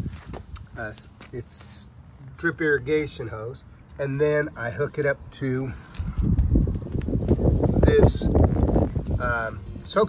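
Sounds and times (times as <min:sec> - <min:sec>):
wind buffeting microphone: 0:05.9 - 0:09.8.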